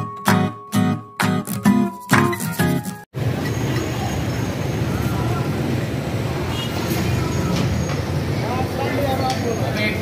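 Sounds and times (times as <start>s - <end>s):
road traffic rumble: 3.1s - 10.0s
people talking: 8.4s - 10.0s.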